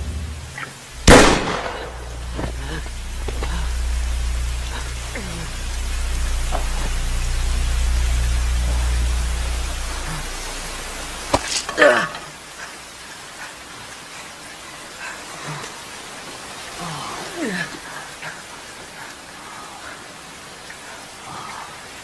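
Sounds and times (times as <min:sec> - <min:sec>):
low drone: 0:00.0 - 0:12.9
steady rain: 0:00.0 - 0:22.0
loud gunshot: 0:01.0 - 0:02.6.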